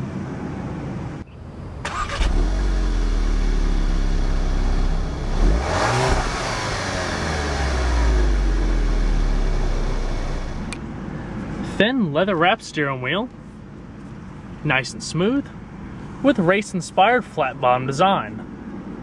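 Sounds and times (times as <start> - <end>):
car engine idling and revving: 0.0 - 11.8.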